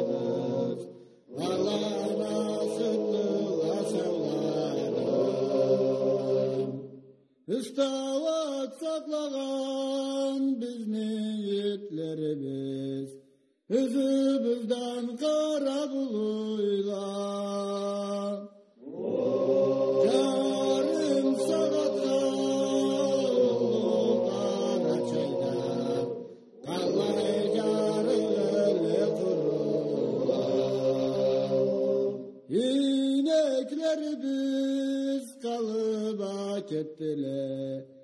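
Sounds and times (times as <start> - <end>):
chant-like singing: 0.0 - 7.0, 13.7 - 37.9.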